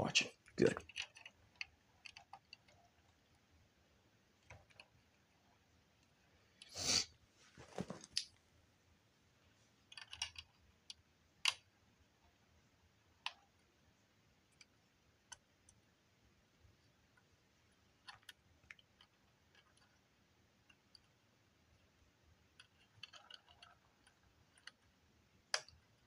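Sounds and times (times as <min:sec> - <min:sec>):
handling noise: 0:07.4 - 0:08.2.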